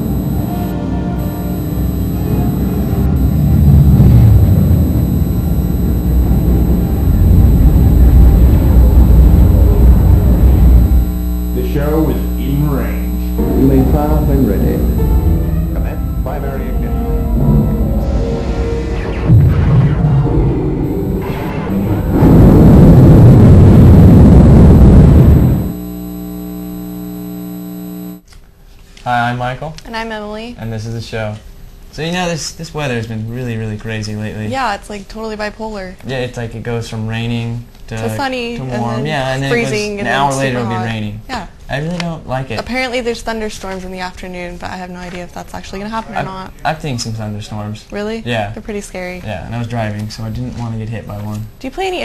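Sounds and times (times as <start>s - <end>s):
low held chord: 0.0s - 18.8s
loud deep rumble: 2.5s - 11.6s, 13.0s - 25.8s
loud dense rushing sound: 18.0s - 25.7s.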